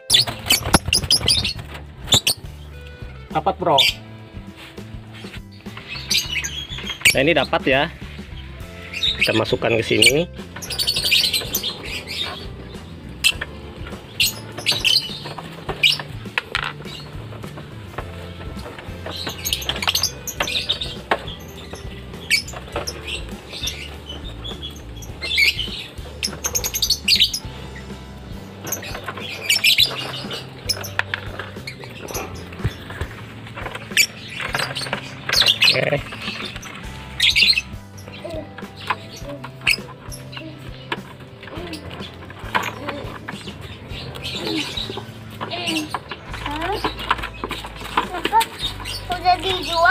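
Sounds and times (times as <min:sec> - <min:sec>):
background music with low beat: 0:00.0 - 0:49.9
birds squawking shrilly: 0:00.0 - 0:49.9.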